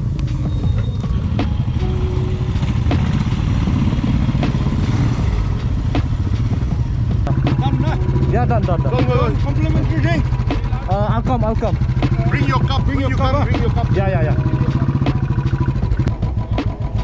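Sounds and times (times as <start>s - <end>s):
motorcycle engines idling: 0.0s - 17.0s.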